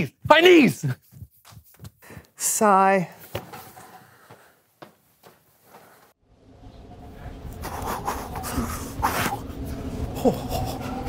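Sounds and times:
footsteps on wooden floor: 3.2 - 6.1.

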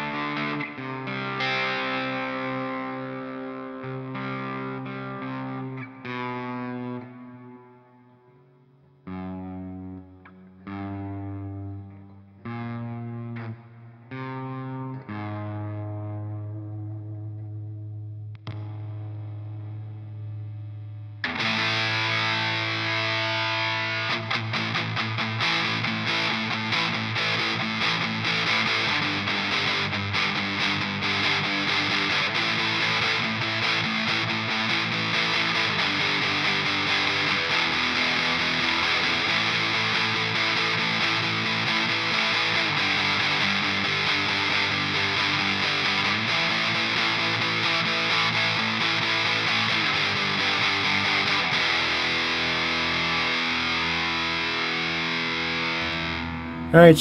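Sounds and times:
distorted electric guitar: 0.0 - 57.0.

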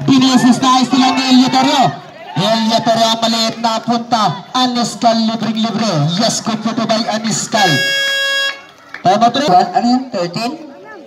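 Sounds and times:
voices on the court: 0.0 - 11.0
basketball buzzer: 7.7 - 8.7.

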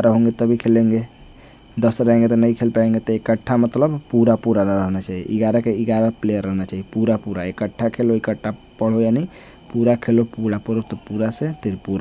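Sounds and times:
man speaking: 0.0 - 1.2, 1.8 - 12.0
cricket chirping: 0.0 - 12.0.

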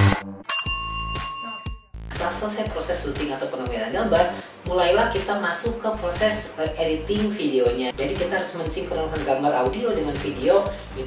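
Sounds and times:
electronic dance music: 0.0 - 0.3
bell-like ding: 0.5 - 2.0.

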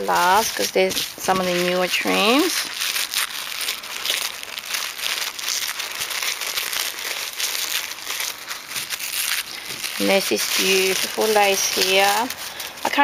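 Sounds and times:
packaging crinkling: 0.0 - 13.0.

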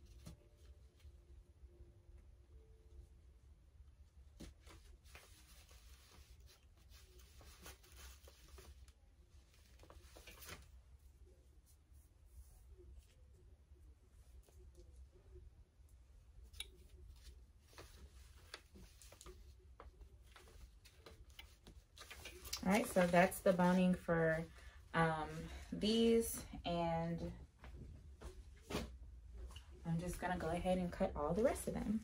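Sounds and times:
low steady hum: 0.0 - 32.0
fabric and paper rustling: 4.2 - 13.4, 16.4 - 26.2.

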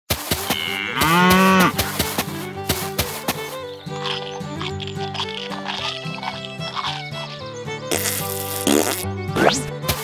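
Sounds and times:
cow mooing: 0.5 - 1.8.

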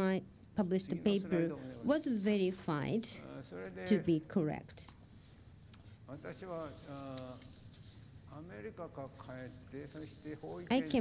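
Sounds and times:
person speaking: 0.6 - 4.8, 6.0 - 11.0.

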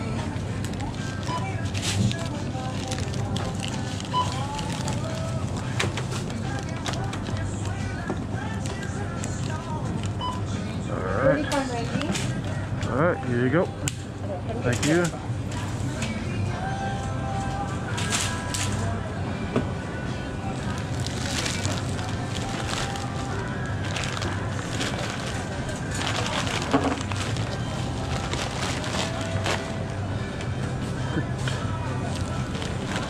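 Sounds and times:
plastic bag rustling: 0.0 - 7.5, 20.6 - 30.0, 32.0 - 33.0
faint background music: 0.0 - 33.0
groceries being scanned and bagged: 0.0 - 33.0.

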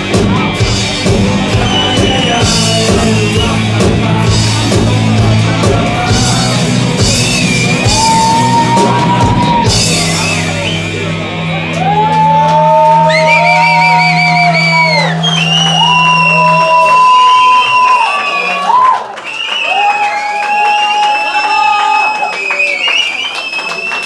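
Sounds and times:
audience cheering and whooping: 6.0 - 10.6, 11.7 - 24.0
scattered clapping: 11.7 - 24.0.

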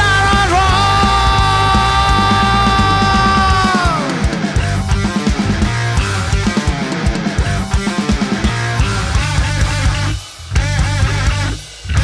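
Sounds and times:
distorted electric guitar: 0.0 - 12.0
drum kit: 0.0 - 12.0
electric bass: 0.0 - 12.0.

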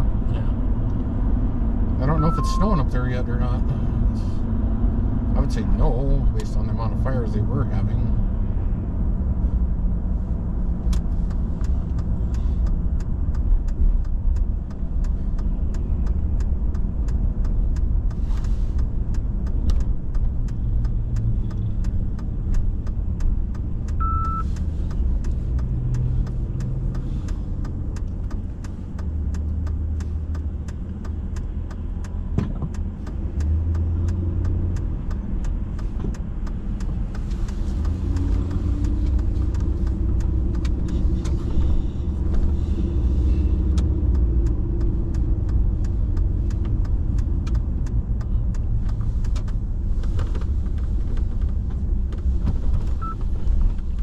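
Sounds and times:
car engine and road noise: 0.0 - 54.0
short high beep: 2.1 - 2.8, 24.0 - 24.4.

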